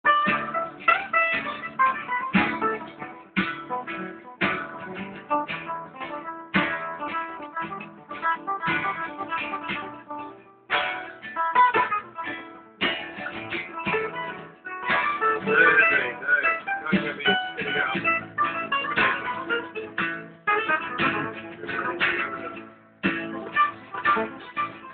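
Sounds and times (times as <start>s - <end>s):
acoustic guitar plucked: 0.0s - 24.9s.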